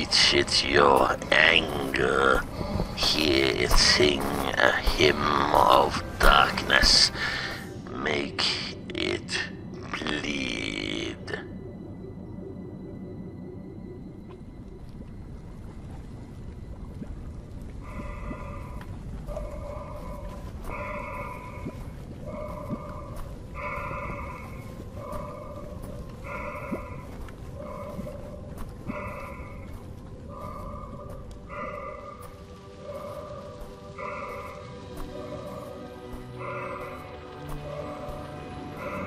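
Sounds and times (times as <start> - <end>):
low rumbling ambience: 0.0 - 39.0.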